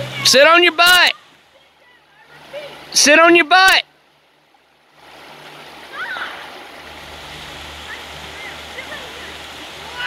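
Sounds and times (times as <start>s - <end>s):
river rapids rushing: 0.0s - 10.0s.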